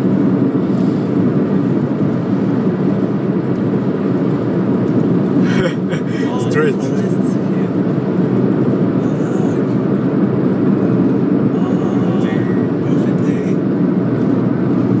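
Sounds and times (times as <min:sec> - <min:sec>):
car driving interior rumble: 0:00.0 - 0:15.0.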